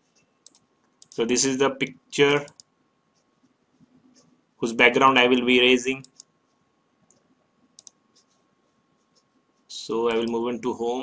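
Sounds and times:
computer mouse clicks: 0.1s - 1.2s, 2.3s - 4.4s, 6.0s - 8.4s.

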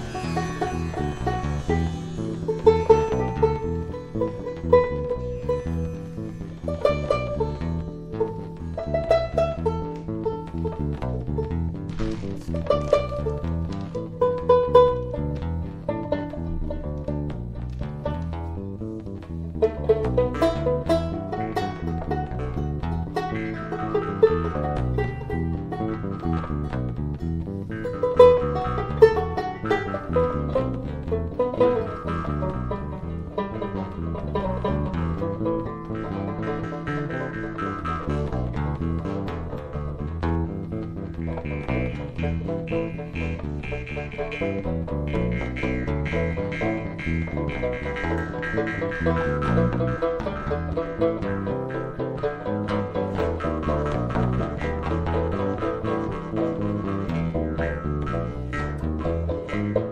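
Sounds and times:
banjo picking melody: 0.0s - 59.9s
bass line: 0.0s - 59.9s.

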